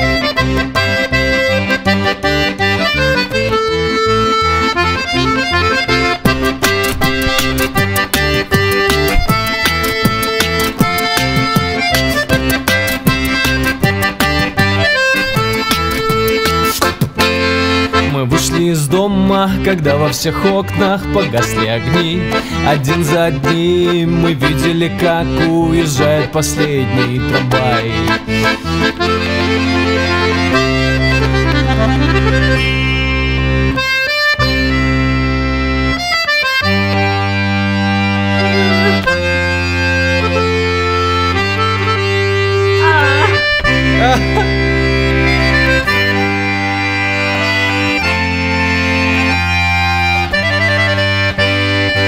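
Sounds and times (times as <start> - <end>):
button accordion melody: 0.0 - 52.0.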